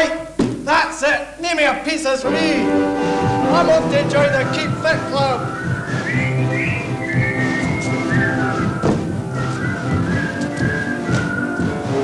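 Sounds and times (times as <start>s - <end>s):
live band music: 2.2s - 12.0s.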